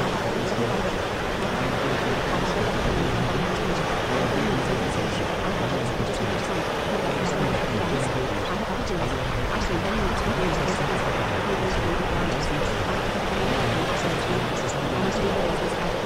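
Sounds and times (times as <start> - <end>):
faint sped-up speech: 0.0 - 16.0
steady water-like rushing noise: 0.0 - 16.0.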